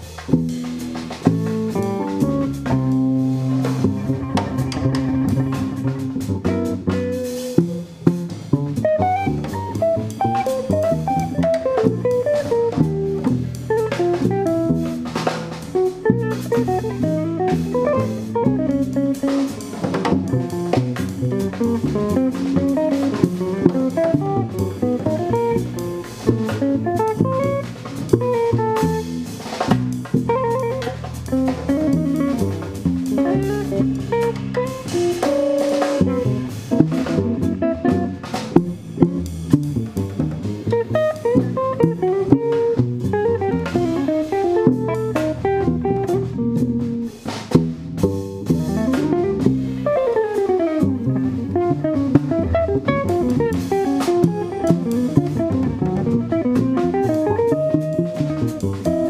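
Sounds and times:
drum kit with cymbals: 0:00.0 - 0:59.0
plucked double bass: 0:00.0 - 0:59.0
electric guitar single-note lines: 0:48.6 - 0:59.0.

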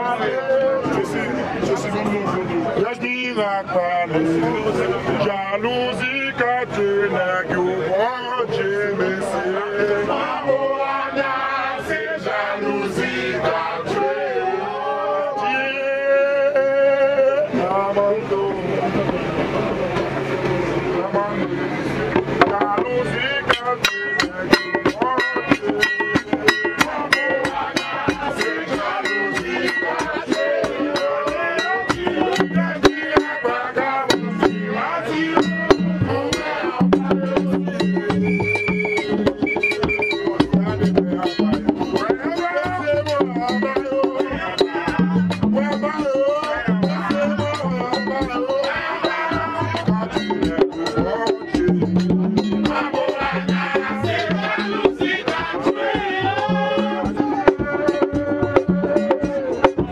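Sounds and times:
voices singing a chant: 0:00.0 - 0:59.9
fast drum beat: 0:22.0 - 0:59.9.

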